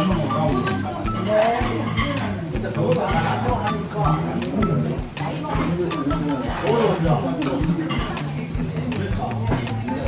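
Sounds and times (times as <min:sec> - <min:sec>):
upbeat banjo music: 0:00.0 - 0:10.0.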